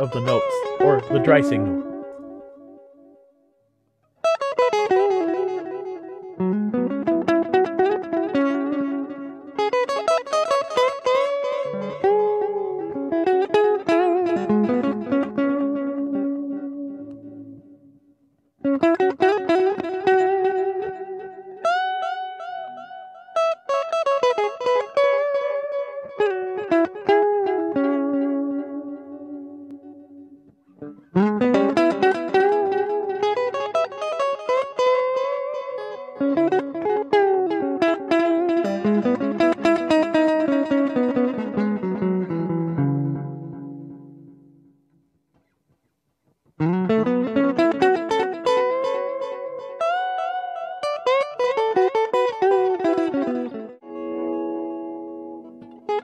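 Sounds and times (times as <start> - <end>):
clean electric guitar with delay: 0.0 - 3.3, 4.2 - 44.8, 46.6 - 56.0.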